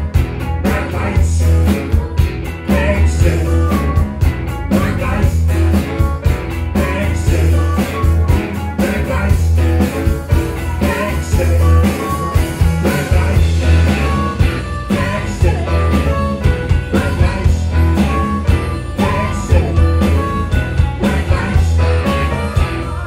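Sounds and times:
blues-rock band playing: 0.0 - 23.0.

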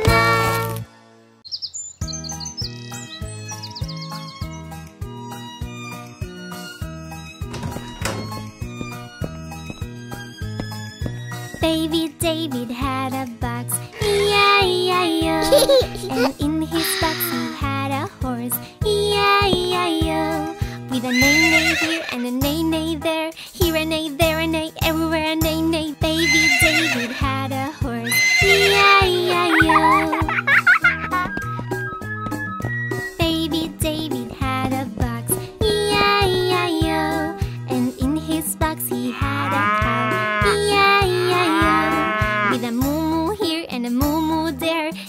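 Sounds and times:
upbeat children's song music: 0.0 - 0.9, 2.1 - 45.0
horse whinny: 21.1 - 22.2, 26.2 - 27.3, 28.1 - 28.9, 39.2 - 40.6, 41.6 - 42.6
cow mooing: 39.1 - 40.7, 41.5 - 42.6.

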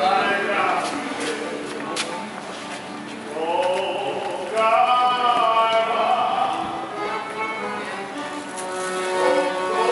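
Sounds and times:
person singing: 3.3 - 6.9.

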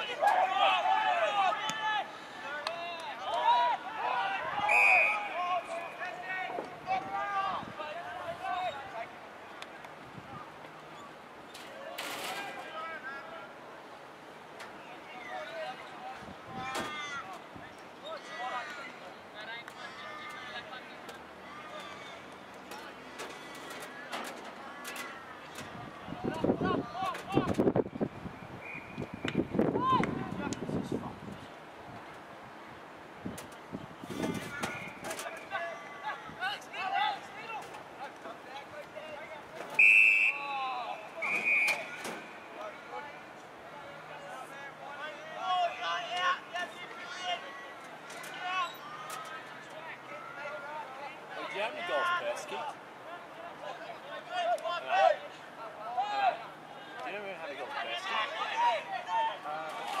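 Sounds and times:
players shouting: 0.0 - 9.1, 14.9 - 23.8, 34.4 - 60.0
whistle blasts: 4.6 - 5.3, 28.6 - 29.6, 39.8 - 40.5, 41.2 - 42.0.

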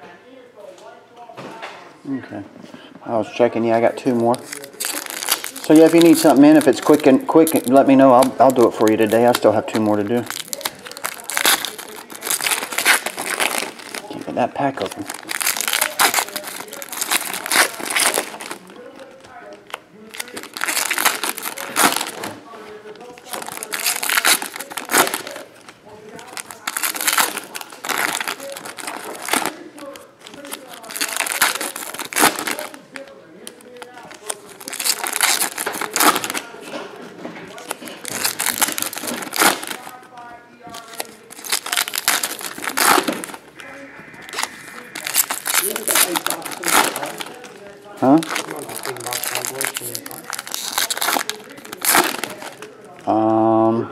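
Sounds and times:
foil wrappers crinkling and tearing: 3.7 - 53.2.

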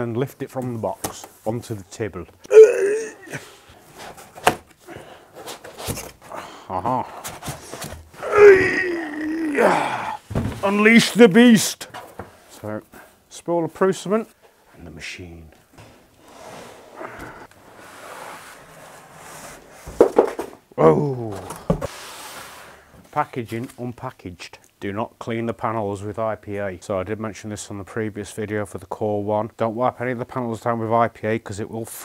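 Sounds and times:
foam rubbing and scuffing: 17.7 - 20.0, 21.9 - 22.9.

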